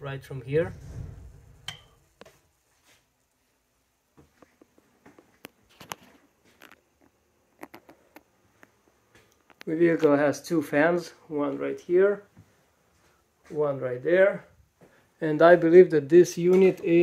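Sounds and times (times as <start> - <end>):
faint clicks and taps: 4.2 - 10.2.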